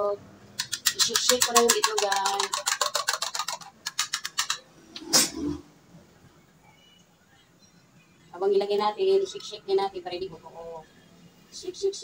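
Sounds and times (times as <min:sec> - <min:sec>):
egg beaten in a bowl: 0:00.6 - 0:04.7.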